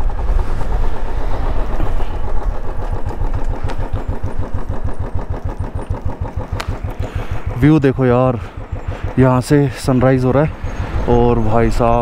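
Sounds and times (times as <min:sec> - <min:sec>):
motorcycle engine running: 0:00.0 - 0:12.0
riding noise: 0:00.0 - 0:12.0.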